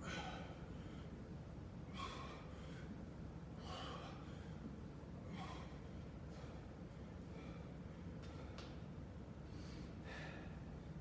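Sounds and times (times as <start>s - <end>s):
man breathing hard: 0.0s - 8.8s, 9.4s - 11.0s.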